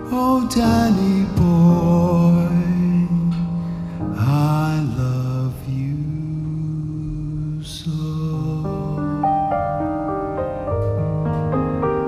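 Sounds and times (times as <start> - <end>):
man singing slow ballad: 0.0 - 9.9
piano notes: 0.0 - 12.0
soft accompaniment: 0.0 - 12.0.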